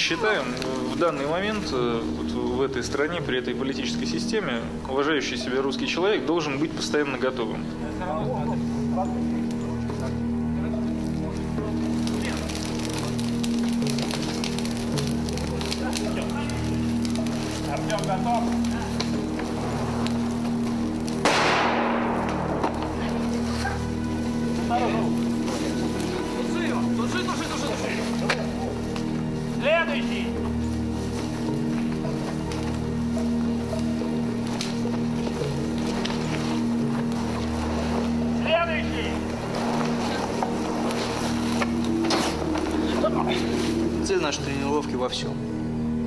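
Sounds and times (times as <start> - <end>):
low music drone over loudspeakers: 0.0 - 46.0
rumbling noise: 11.6 - 35.3
sudden loud burst: 21.3 - 23.0.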